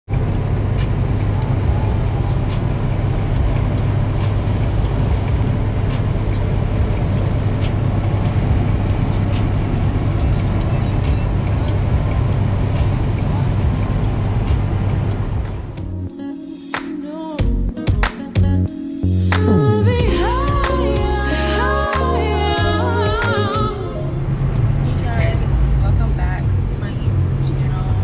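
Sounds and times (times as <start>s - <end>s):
car cabin road drone: 0.1s - 16.1s, 19.0s - 28.0s.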